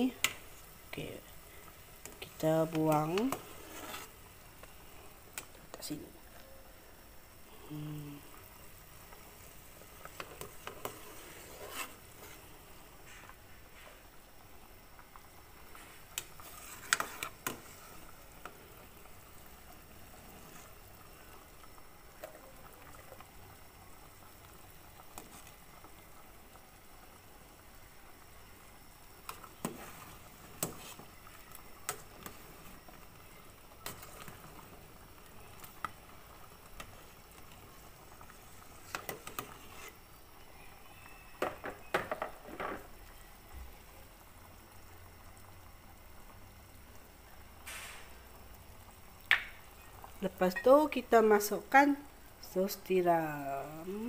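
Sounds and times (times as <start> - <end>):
water boiling in a stockpot: 0.0 - 54.0.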